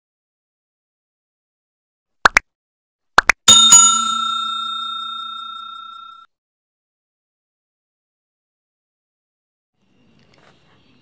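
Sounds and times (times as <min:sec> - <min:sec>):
notification bell ding: 0:03.5 - 0:06.3.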